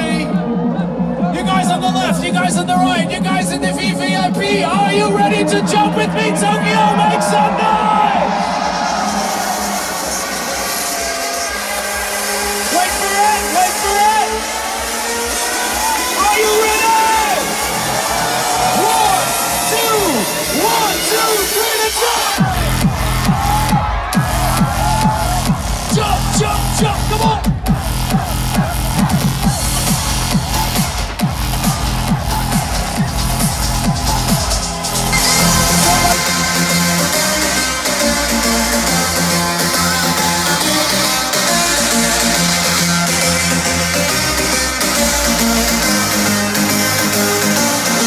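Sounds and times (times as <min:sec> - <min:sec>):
electronic dance music: 0:00.0 - 0:48.0
heavy bass and kick drum: 0:00.0 - 0:48.0
crowd cheering: 0:04.7 - 0:48.0.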